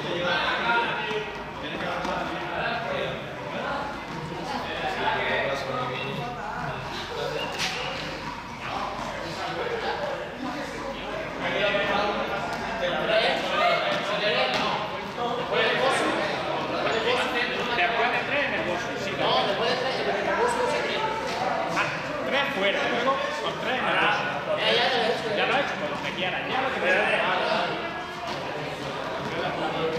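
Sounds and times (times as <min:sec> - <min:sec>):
indistinct chatter echoing: 0:00.0 - 0:29.9.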